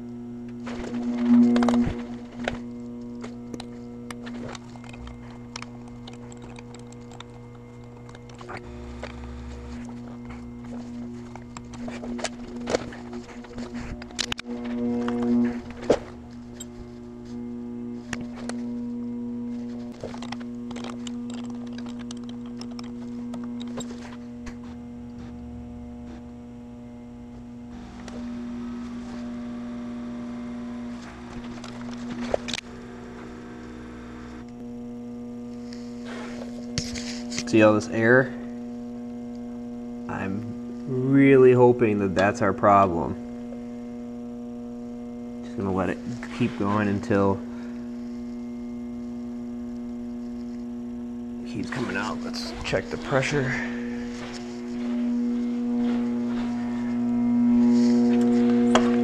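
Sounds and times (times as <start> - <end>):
pump motor electric hum: 0.0 - 59.0
sharp clicks and knocks: 0.5 - 16.7, 19.8 - 24.6.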